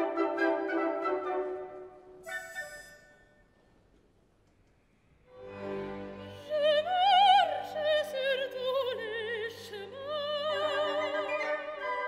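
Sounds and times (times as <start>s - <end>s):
orchestra playing chords: 5.3s - 6.5s
soprano singing: 6.2s - 12.0s.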